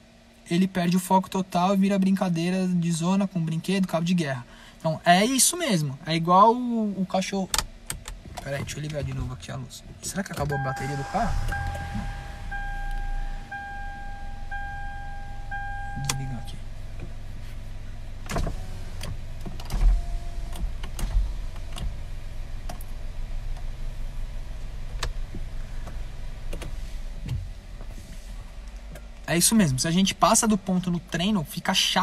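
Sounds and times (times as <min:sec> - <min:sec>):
low steady car hum: 0:00.0 - 0:32.0
car warning chime: 0:10.4 - 0:16.7, 0:19.9 - 0:20.6.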